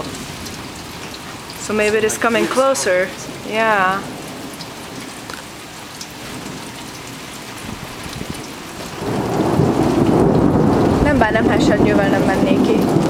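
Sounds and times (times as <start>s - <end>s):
steady rain falling: 0.0s - 13.0s
thunder rumbling: 0.0s - 13.0s.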